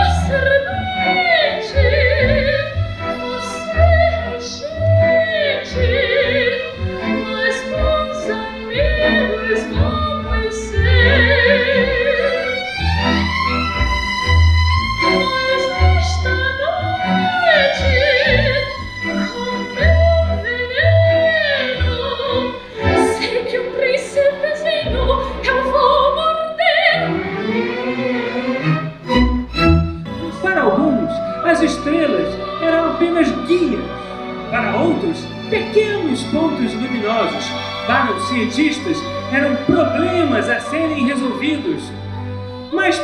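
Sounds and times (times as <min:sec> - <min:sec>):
low cello and double bass notes: 0:00.0 - 0:24.0, 0:26.9 - 0:43.0
soprano singing: 0:00.0 - 0:43.0
string section playing melody: 0:00.0 - 0:43.0.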